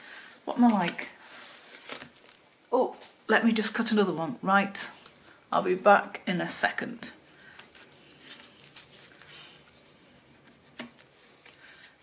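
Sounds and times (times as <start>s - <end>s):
paper rustling on a tabletop: 0.6s - 2.4s, 7.3s - 12.0s.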